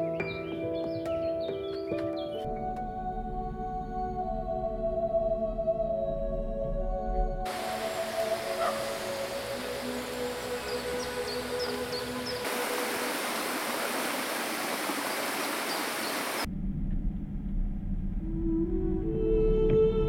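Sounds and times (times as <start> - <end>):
waterfall rushing over rocks: 7.5 - 16.5.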